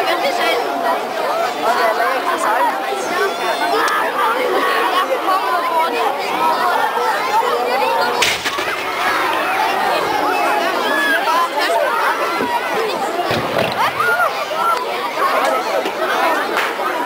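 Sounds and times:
crowd chattering: 0.0s - 17.0s.

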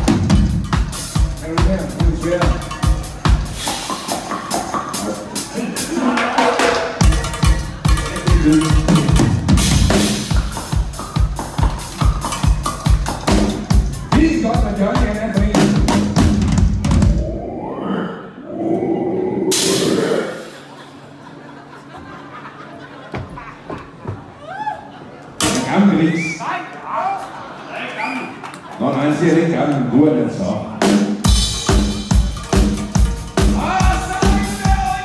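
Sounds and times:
drum kit beat: 0.0s - 17.3s, 19.5s - 20.6s, 30.8s - 35.0s
live dance band playing: 0.0s - 17.4s, 19.5s - 20.8s, 30.7s - 35.0s
loud full-band hit: 19.5s - 20.6s.

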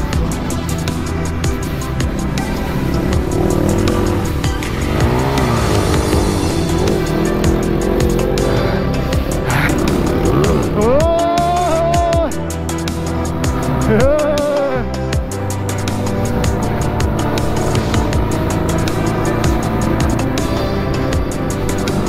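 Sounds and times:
dirt bike engines revving: 0.0s - 22.0s
music with steady beat: 0.0s - 22.0s.

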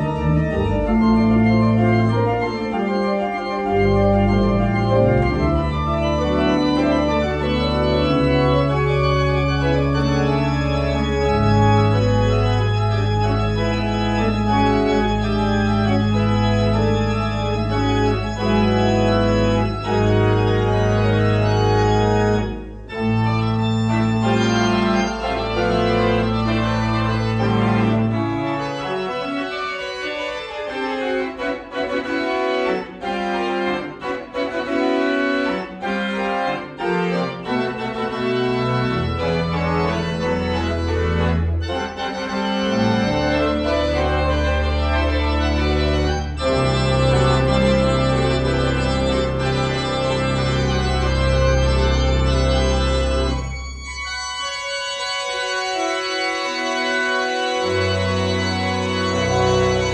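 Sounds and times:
church organ playing: 0.0s - 59.9s.

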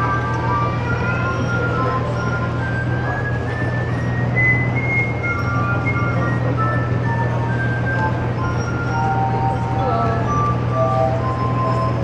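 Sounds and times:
glass harp ringing notes: 0.0s - 12.0s
steady low hum: 0.0s - 12.0s.

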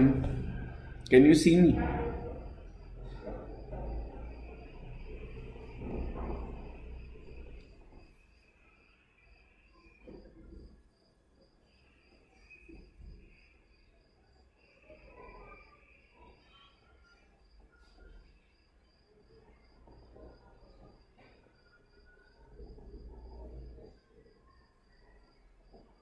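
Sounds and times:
cricket chirping: 0.0s - 26.0s.

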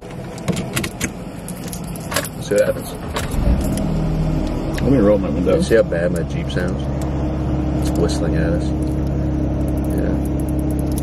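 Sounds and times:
car engine rumble: 0.0s - 11.0s.

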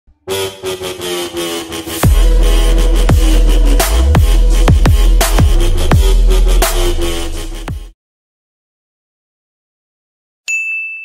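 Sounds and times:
intro music: 0.2s - 8.0s.

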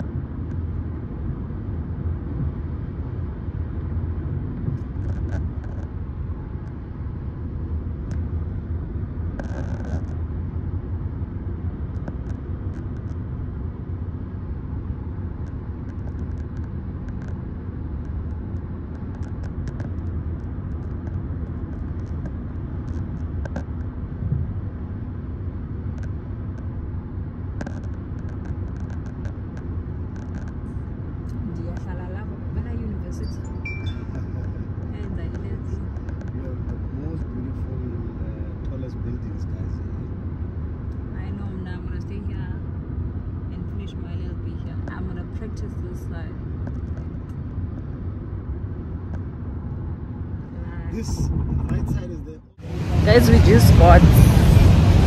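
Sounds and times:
car road and engine rumble: 0.0s - 55.0s.

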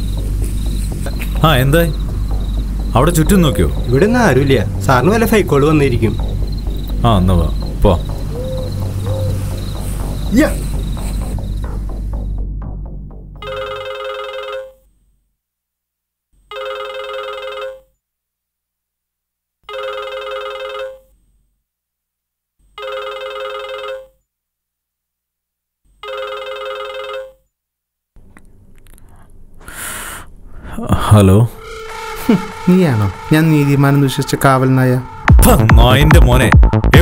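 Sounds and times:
film music: 0.0s - 14.0s, 30.6s - 37.0s
phone electronic warbling ring: 13.4s - 14.8s, 16.5s - 18.0s, 22.7s - 24.2s, 26.0s - 27.5s.

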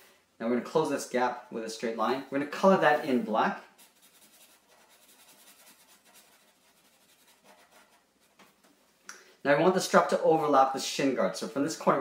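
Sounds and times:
marker scratching on paper: 2.8s - 8.6s.

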